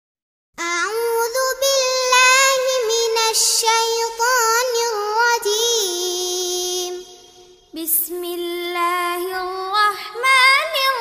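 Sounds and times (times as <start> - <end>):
girl singing unaccompanied: 0.6 - 11.0.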